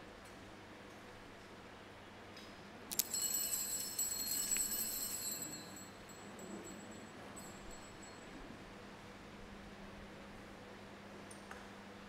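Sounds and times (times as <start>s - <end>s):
small bells ringing: 2.9s - 8.5s.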